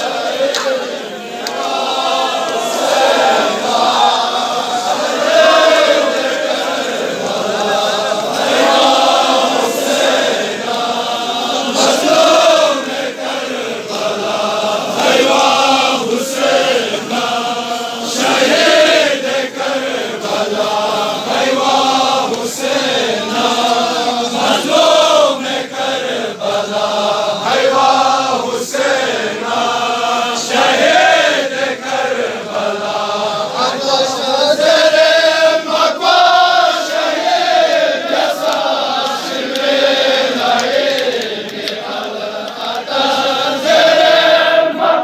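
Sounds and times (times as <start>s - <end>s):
men chanting a lament: 0.0s - 45.0s
hands slapping chests: 0.5s - 1.8s, 38.4s - 39.8s, 40.4s - 42.9s.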